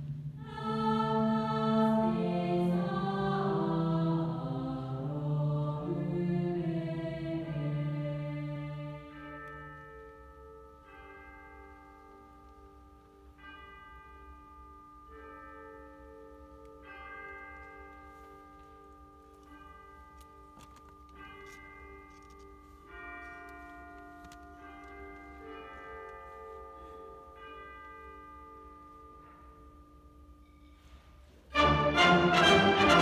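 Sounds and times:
wind band playing softly: 31.5s - 33.0s.

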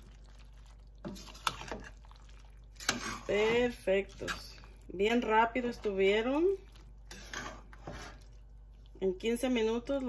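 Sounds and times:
spoon stirring beans: 0.0s - 10.0s.

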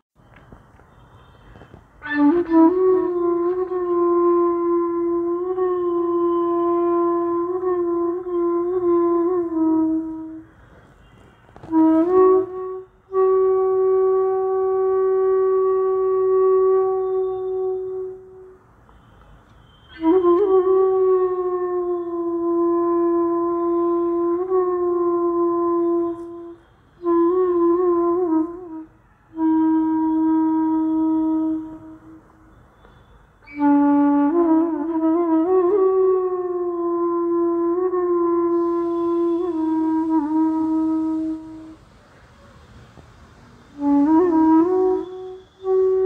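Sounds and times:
solo flute playing: 0.3s - 46.0s.

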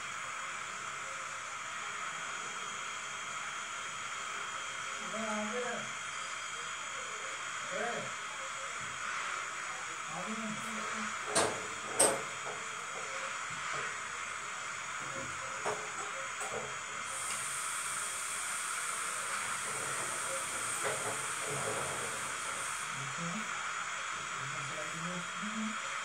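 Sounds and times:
higher thinner hiss: 17.0s - 23.6s.

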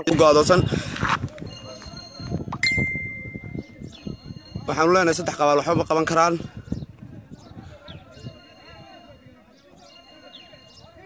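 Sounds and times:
distant voices: 0.0s - 11.0s.

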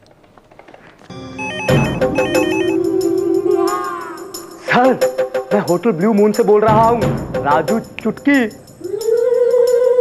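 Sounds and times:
electronic telephone ringing: 1.1s - 2.8s
background music: 1.1s - 10.0s.

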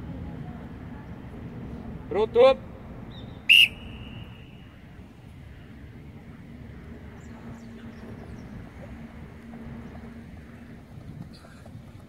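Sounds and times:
sharp whistle blast: 3.5s - 4.8s.

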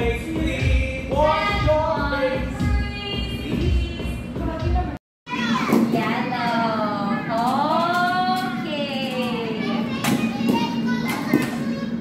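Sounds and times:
children and adults talking: 5.3s - 12.0s.

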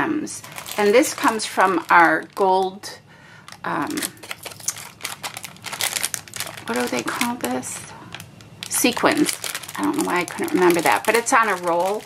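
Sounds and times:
plastic bag crinkling: 0.3s - 2.8s, 3.4s - 12.0s.

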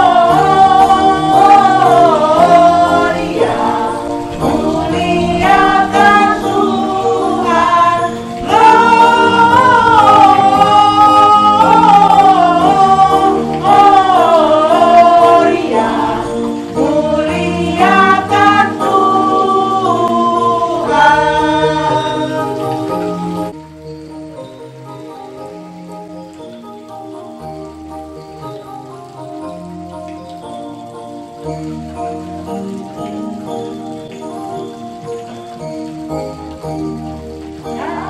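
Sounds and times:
choir singing a hymn: 0.0s - 23.6s, 37.6s - 38.0s.

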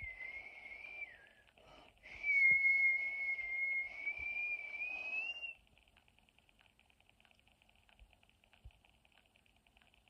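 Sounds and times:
person whistling a long note: 0.0s - 1.4s, 2.0s - 5.6s.

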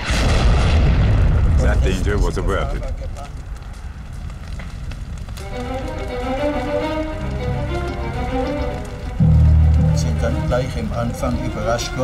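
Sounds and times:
heavy low boom: 0.0s - 3.9s
low rumble: 0.0s - 11.9s
sustained soundtrack notes: 5.4s - 12.0s.

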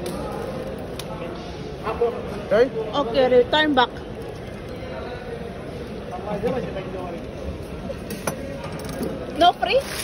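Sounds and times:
busy market background noise: 0.0s - 10.0s.

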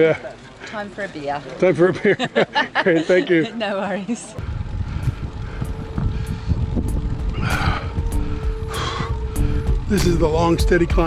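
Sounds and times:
wind buffeting microphone: 4.4s - 11.0s
background music steady note: 5.4s - 11.0s.

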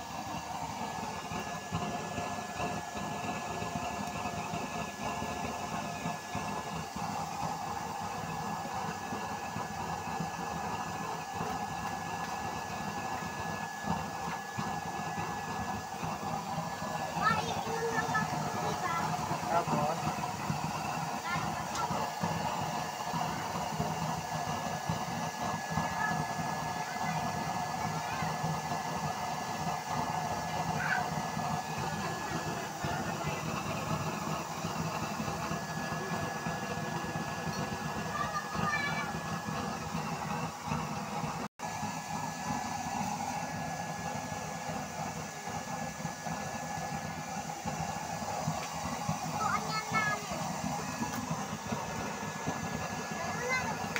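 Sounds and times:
faint steady whine: 0.0s - 53.9s
oil burner blower roaring: 0.0s - 53.9s.

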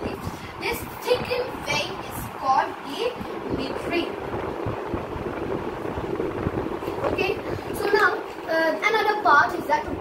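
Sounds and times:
low rumble and hiss: 0.0s - 10.0s.

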